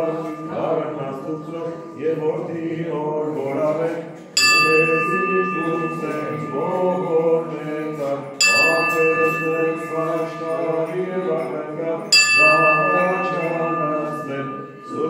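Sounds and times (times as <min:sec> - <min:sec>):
bell ringing: 0:00.0 - 0:03.7, 0:04.4 - 0:15.0
voices singing a liturgical chant: 0:00.0 - 0:15.0.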